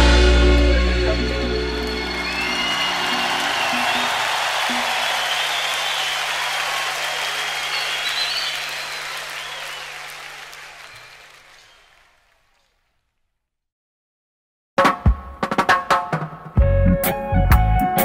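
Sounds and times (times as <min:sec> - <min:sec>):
audience applauding and cheering: 0:00.0 - 0:12.8.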